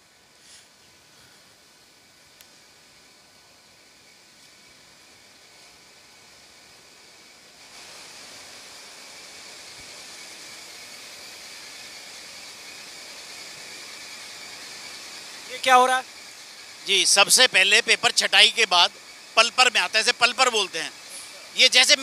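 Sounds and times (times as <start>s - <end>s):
machinery hiss and hum: 0.0s - 22.0s.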